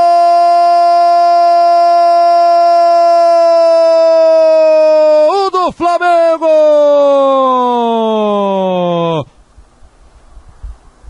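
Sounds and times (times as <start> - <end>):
commentator's long goal cry: 0.0 - 9.3
man shouting: 0.0 - 9.3.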